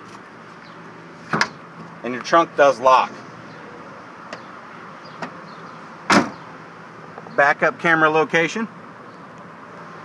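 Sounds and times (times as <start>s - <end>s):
steady outdoor hiss: 0.0s - 10.0s
tailgate shutting clunk: 1.2s - 1.9s, 6.0s - 6.5s.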